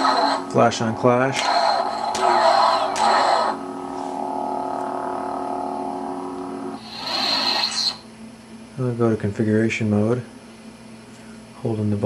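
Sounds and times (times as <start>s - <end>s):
lightsaber idle hum: 0.0s - 8.2s
toy lightsaber clash sound: 1.3s - 3.6s.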